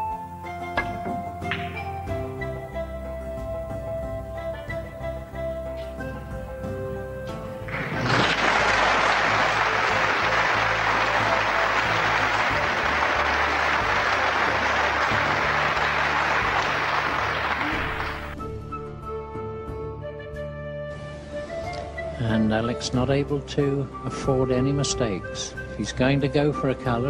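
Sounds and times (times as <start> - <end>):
instrumental background music: 0.0 - 27.0
audience applauding: 7.7 - 18.4.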